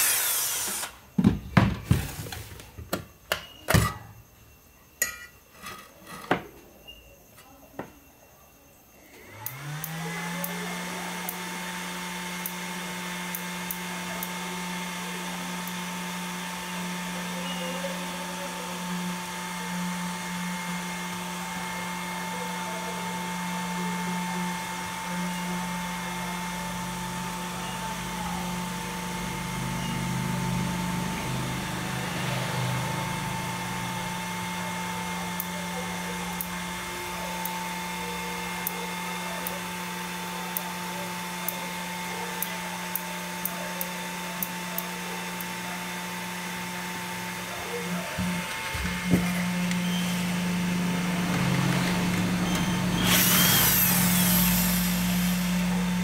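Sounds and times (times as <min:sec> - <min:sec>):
cooling fan humming: 0:09.3 - 0:56.0.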